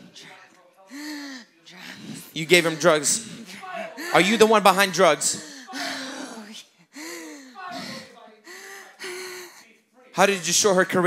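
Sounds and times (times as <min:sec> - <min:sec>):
woman's wordless vocal sounds: 0:05.4 - 0:09.6.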